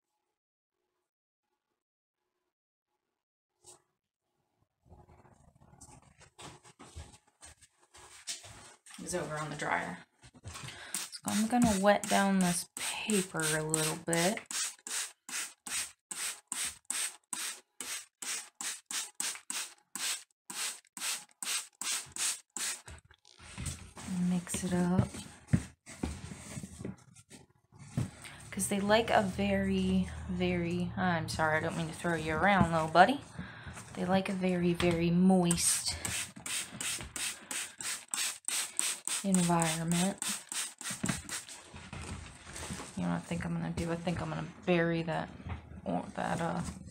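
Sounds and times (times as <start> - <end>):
spray bottle hissing sprays: 10.9 - 22.8, 35.7 - 41.6.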